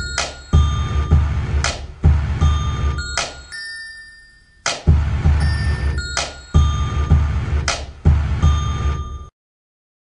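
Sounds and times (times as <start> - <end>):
bell-like melody notes: 0.0 - 1.4, 2.3 - 7.6
kick and bass pulsing: 0.0 - 3.1, 4.9 - 9.3
hip-hop beat: 0.0 - 3.6, 4.6 - 9.3.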